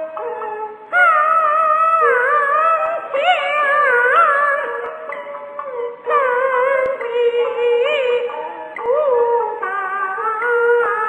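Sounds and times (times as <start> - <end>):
opera singing: 0.0 - 11.0.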